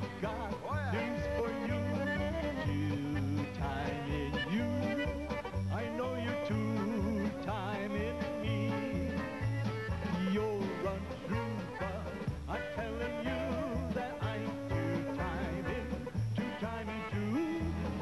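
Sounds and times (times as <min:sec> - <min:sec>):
accordion melody: 0:00.0 - 0:18.0
polka band playing: 0:00.0 - 0:18.0
upright bass oom-pah beat: 0:00.0 - 0:18.0.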